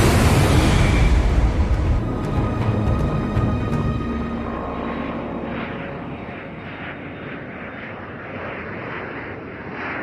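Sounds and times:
jet engine rumble and hiss: 0.0 - 10.0.

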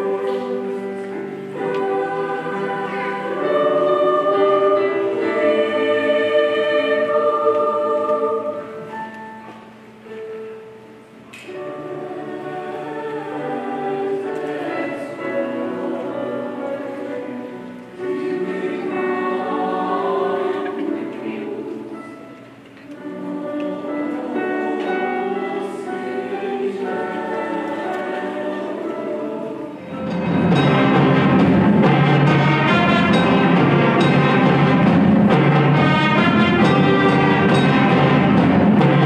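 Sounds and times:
choir singing: 0.0 - 9.4, 11.5 - 39.0.

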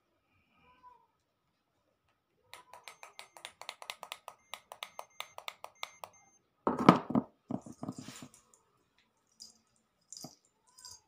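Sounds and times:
rapid sharp clicks: 2.6 - 6.2.

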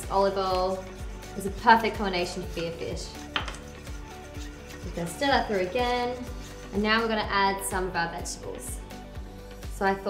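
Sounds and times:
spoon scraping metal bowl: 0.0 - 7.8
background music with beat: 0.0 - 10.0.

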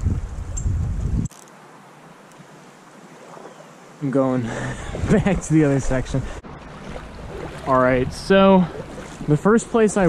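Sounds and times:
wind buffeting microphone: 0.0 - 1.3, 4.5 - 10.0.

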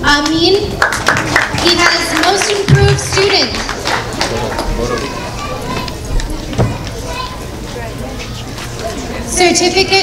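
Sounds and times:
children chattering and calling out: 3.8 - 10.0.

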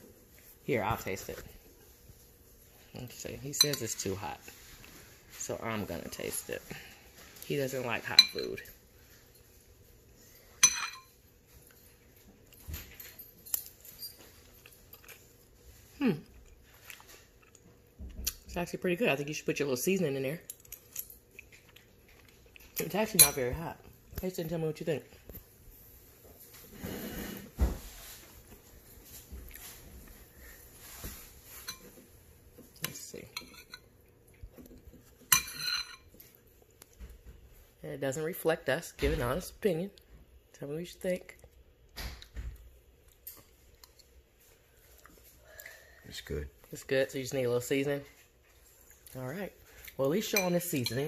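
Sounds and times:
metal spoon clinking on bowl: 10.6 - 11.1, 35.3 - 36.1
chewing noises: 14.4 - 18.4.

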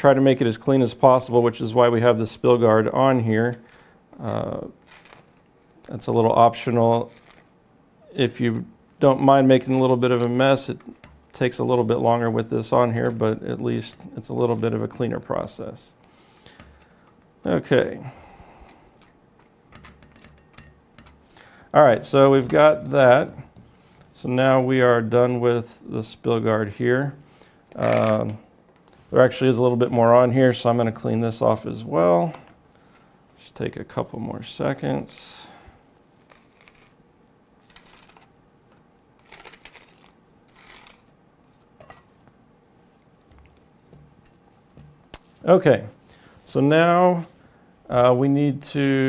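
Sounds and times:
scraper card scraping plastic: 4.8 - 5.5, 7.0 - 7.5, 36.2 - 37.0, 37.6 - 38.3, 39.2 - 41.1.

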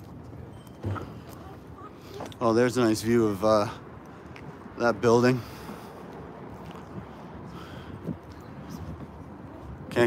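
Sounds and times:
distant street traffic rumble: 0.0 - 10.0.

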